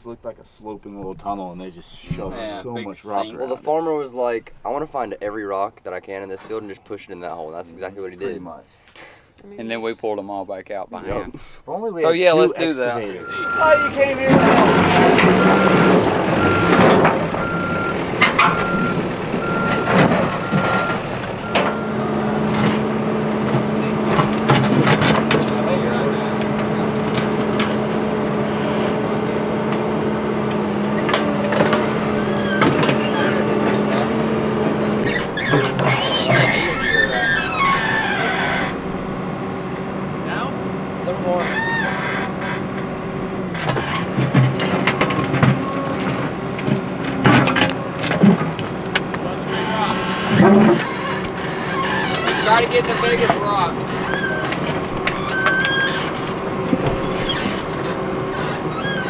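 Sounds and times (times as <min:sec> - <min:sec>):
diesel engine under load: 0:11.4 - 0:59.0
reversing alarm beeps: 0:13.1 - 0:22.1.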